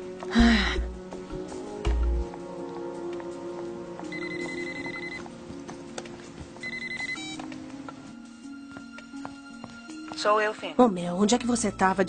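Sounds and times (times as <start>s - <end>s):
soft background music: 0.0s - 12.0s
telephone ringing: 4.1s - 5.3s, 6.6s - 7.4s.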